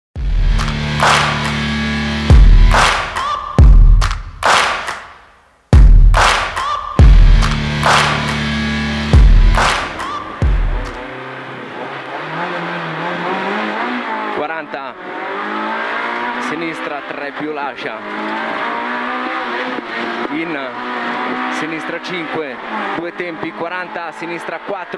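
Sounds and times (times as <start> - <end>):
rally car engine revving: 0.2 - 3.6, 7.0 - 24.9
intro music with heavy bass: 0.2 - 4.9, 5.7 - 11.2.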